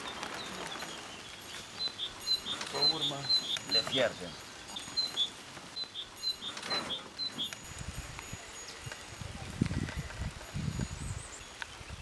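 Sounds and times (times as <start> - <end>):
small bird chirping: 0.0 - 9.0.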